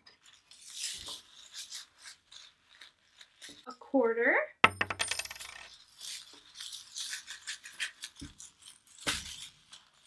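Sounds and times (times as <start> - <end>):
plastic pellets rustling in a beanbag: 0.2 - 3.7, 5.7 - 10.0.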